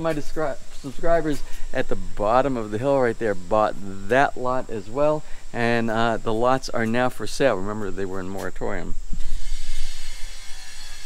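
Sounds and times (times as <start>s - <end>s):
high hiss: 0.0s - 11.0s.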